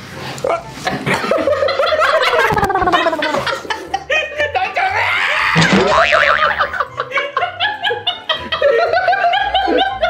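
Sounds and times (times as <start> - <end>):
cartoon swooping sound effect: 2.4 - 3.4, 5.4 - 6.6.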